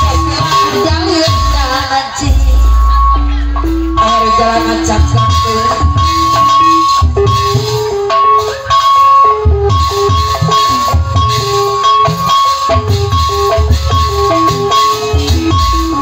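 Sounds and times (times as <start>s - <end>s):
gamelan ensemble music: 0.0s - 16.0s
high held tone: 0.0s - 16.0s.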